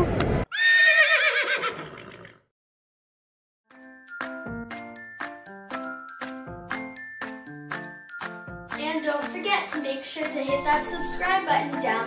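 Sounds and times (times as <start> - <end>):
horse whinnying: 0.5 - 2.4.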